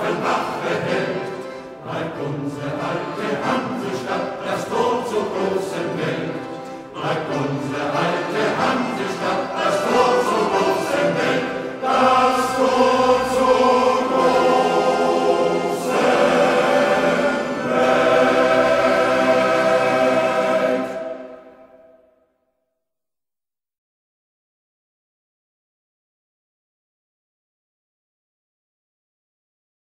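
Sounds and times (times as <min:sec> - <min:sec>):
male choir singing: 0:00.0 - 0:21.9.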